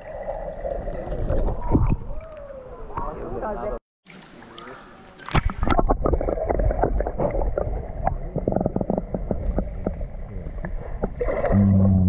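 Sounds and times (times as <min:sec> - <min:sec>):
underwater bubbles and moving water: 0:00.0 - 0:03.4, 0:04.0 - 0:12.0.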